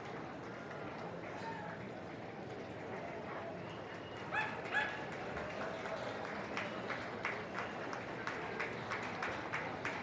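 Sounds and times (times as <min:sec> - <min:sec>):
small dog yipping: 0:04.4 - 0:05.0
hand claps: 0:04.6 - 0:10.0.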